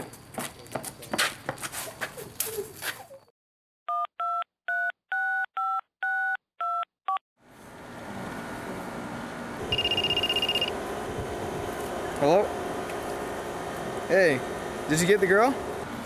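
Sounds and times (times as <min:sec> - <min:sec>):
high ringing tone: 0:09.6 - 0:10.8
telephone keypad tones: 0:09.7 - 0:10.7.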